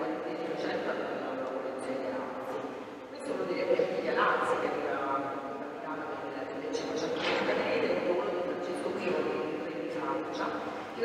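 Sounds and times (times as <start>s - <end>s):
woman speaking into a microphone: 0.0s - 11.0s.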